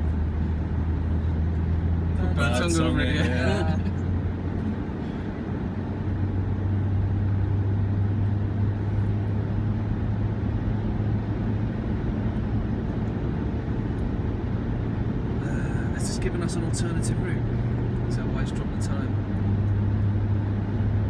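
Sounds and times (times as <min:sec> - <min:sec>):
car engine drone: 0:00.0 - 0:21.0.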